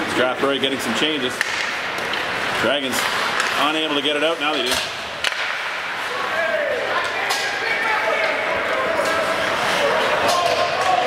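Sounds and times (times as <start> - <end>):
spectators' voices and calls: 0.0 - 11.0.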